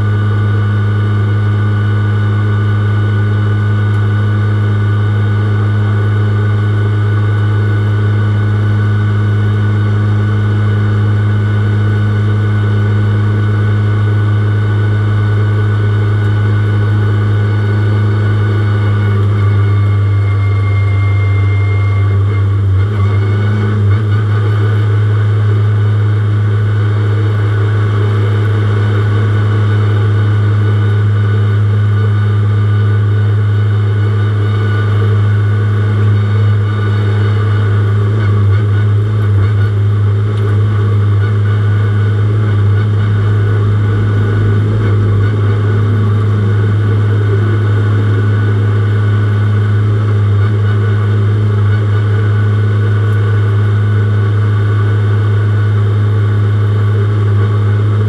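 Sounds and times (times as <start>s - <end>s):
car engine running low: 0.0s - 58.0s.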